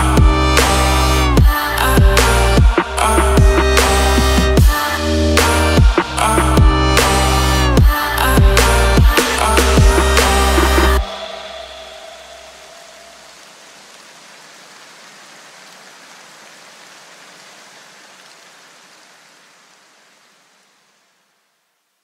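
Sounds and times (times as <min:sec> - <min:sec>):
electronic dance music: 0:00.0 - 0:12.7
steady hiss: 0:00.0 - 0:22.0.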